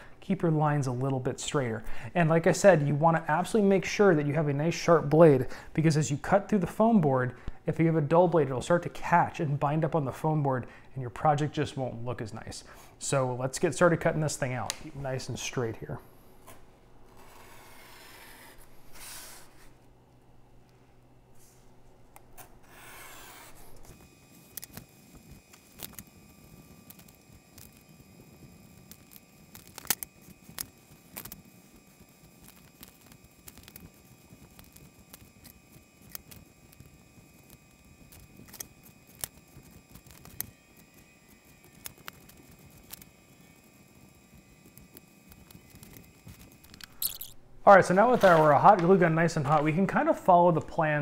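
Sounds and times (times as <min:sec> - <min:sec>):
blade scraping through foam board: 0:17.1 - 0:19.7.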